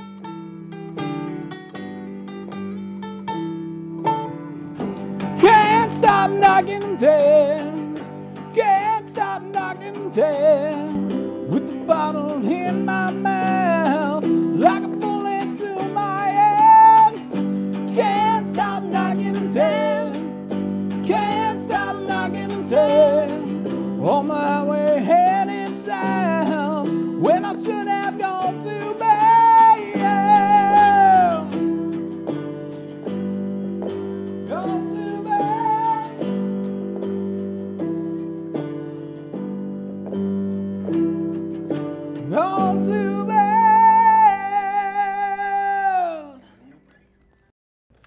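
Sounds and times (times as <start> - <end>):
electric keyboard chords: 0.0 - 46.3
electric guitar: 0.0 - 46.9.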